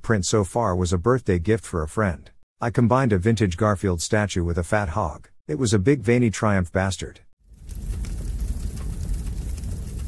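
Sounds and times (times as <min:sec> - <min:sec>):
rumbling hiss transition effect: 0:07.5 - 0:10.0.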